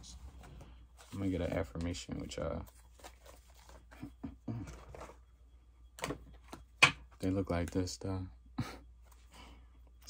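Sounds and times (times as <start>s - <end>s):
cards being handled: 0.0s - 5.2s.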